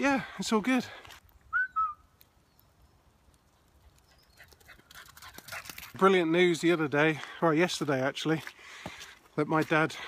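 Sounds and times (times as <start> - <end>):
dog moving on wet track: 3.5 - 6.9
dog panting: 3.6 - 6.0.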